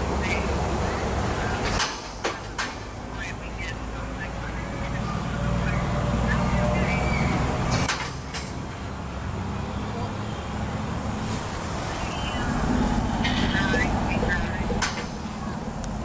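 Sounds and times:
train wheels rumbling on rails: 0.0 - 16.0
high-pitched squeaks: 11.9 - 15.4.

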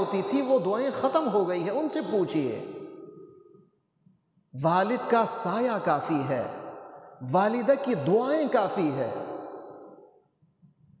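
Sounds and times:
man speaking with echo: 0.0 - 3.2, 4.5 - 10.2.

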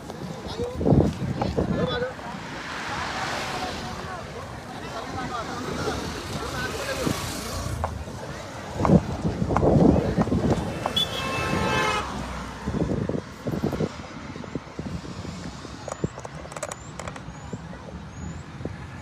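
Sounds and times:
passing road traffic: 0.0 - 19.0.

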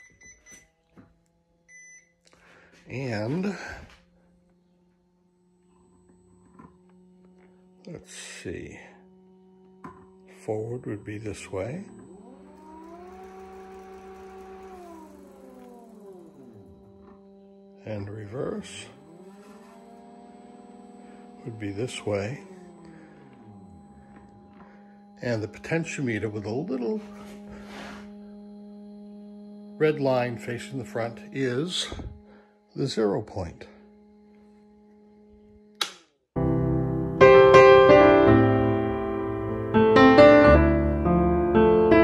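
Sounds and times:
faint steady hum: 0.0 - 35.8
electric motor whine: 0.0 - 42.0
sharp click: 35.8 - 36.1
solo piano music: 36.4 - 42.0.

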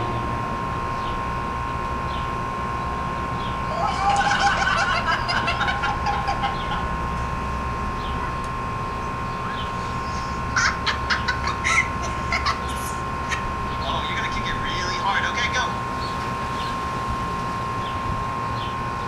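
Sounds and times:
steady high hum: 0.0 - 19.0
bursts of voices: 11.6 - 15.8.

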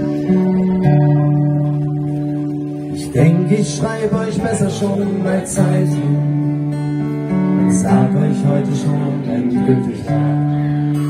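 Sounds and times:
acoustic guitar chord ringing: 0.0 - 11.0.

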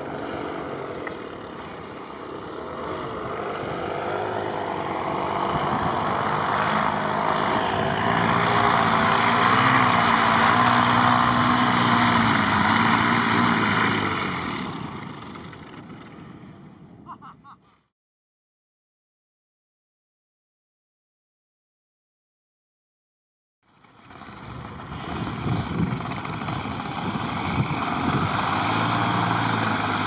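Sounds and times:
paramotor engine and propeller: 0.0 - 17.2, 23.6 - 30.0.

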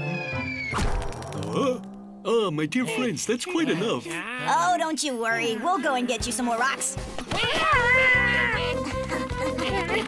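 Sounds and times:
cartoon background music: 5.0 - 10.0
cartoon character squealing cry: 7.3 - 8.7.

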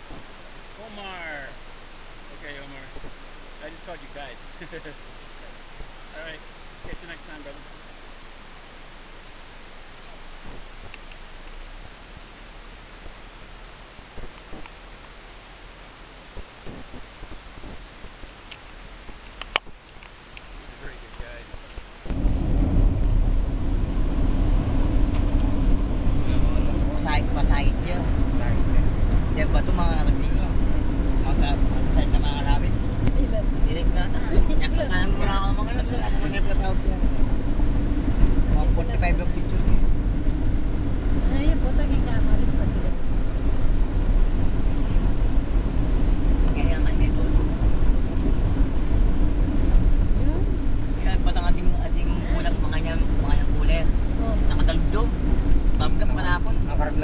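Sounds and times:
car engine and road noise: 0.0 - 57.0
indistinct voices talking: 26.1 - 37.6, 46.0 - 47.8, 50.1 - 57.0.

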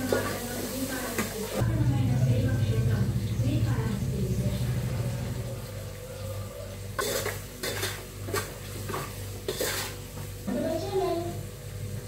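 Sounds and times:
low steady hum: 1.6 - 8.1
spoon clinking on steel pots: 6.9 - 10.0.

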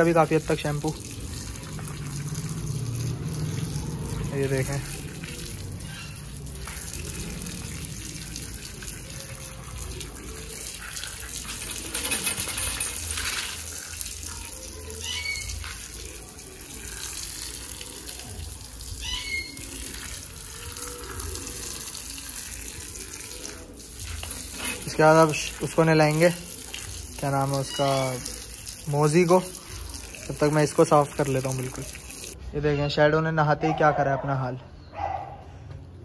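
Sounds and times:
hose water spraying: 0.0 - 32.4.

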